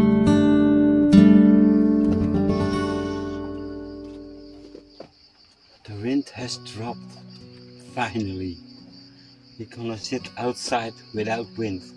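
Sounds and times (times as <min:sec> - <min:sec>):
acoustic guitar music: 0:00.0 - 0:11.9.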